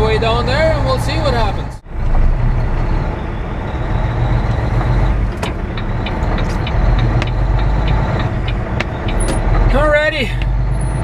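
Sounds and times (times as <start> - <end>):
truck diesel engine running: 0.0 - 11.0
regular clicking: 4.5 - 9.7.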